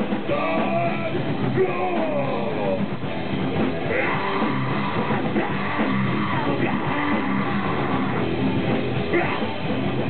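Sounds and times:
live grindcore band playing: 0.0 - 10.0.

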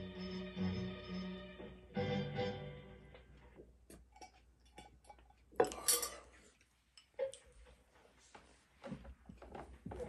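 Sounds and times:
tableware clattering: 4.0 - 6.4
tableware clinking: 4.0 - 6.4.

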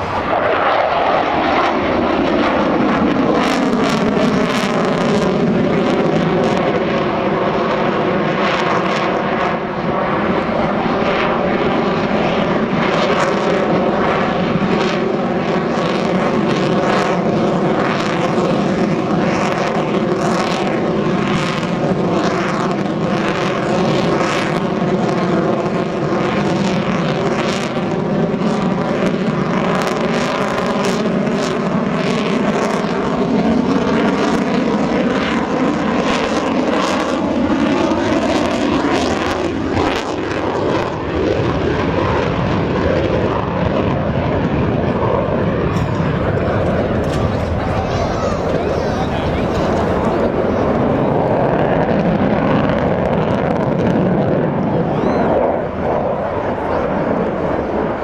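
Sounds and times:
fighter jet engines roaring: 0.0 - 58.0.

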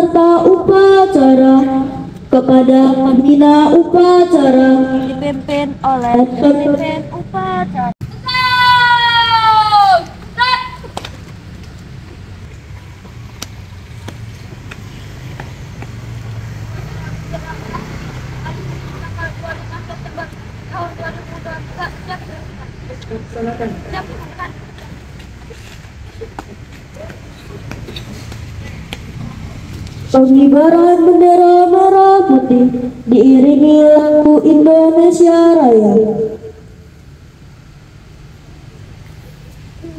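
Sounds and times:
low traffic rumble: 0.0 - 39.9
child shouting a command: 7.7 - 10.9.

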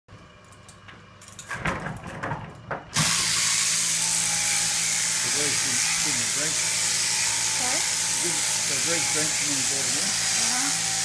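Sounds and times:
electric shearing machine running: 3.0 - 11.0.

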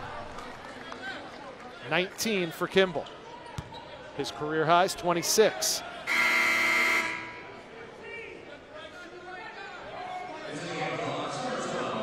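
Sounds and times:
murmur of voices: 0.0 - 12.0
arena horn buzzing blare: 6.1 - 7.6.

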